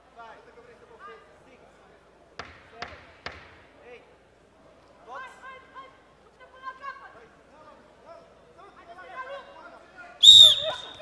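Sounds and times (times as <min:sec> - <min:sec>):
sharp knocks in a hall: 0:02.4 - 0:03.7.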